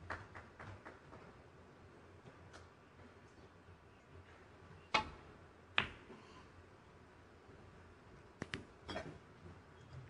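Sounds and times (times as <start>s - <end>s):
balls colliding click: 4.9s - 5.2s.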